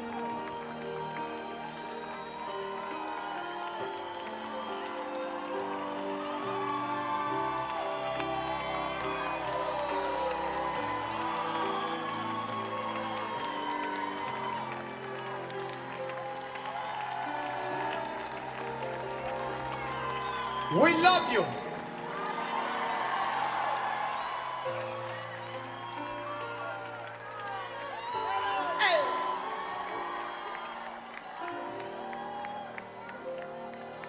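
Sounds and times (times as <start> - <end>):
music of long held chords: 0.0 - 20.8, 21.5 - 34.0
crowd applauding and cheering: 0.0 - 34.0.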